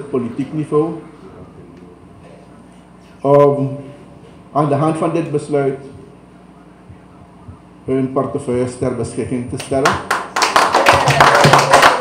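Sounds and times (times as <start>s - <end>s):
audience applauding: 9.8s - 12.0s.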